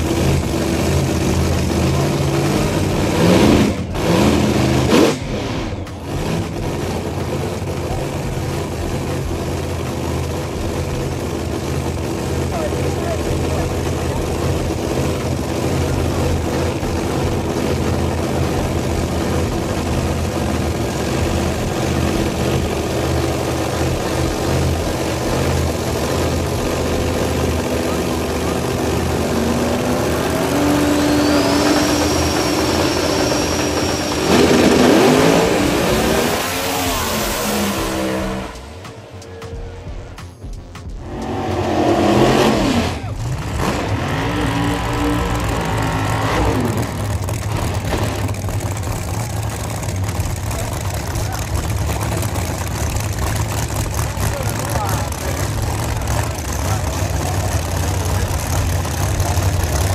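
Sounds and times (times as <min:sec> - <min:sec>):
drag car engines rumbling: 0:00.0 - 0:59.9
high engine whine: 0:00.0 - 0:59.9.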